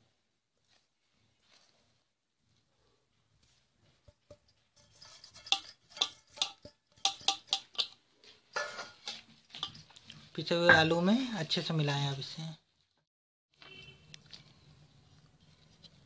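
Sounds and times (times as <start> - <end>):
bowl tapping on steel pot: 4.1 - 8.0.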